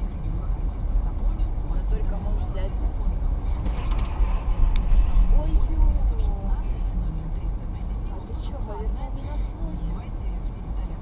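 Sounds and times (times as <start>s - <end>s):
car engine and tyres rumbling: 0.0s - 11.0s
faint voices talking: 0.0s - 11.0s.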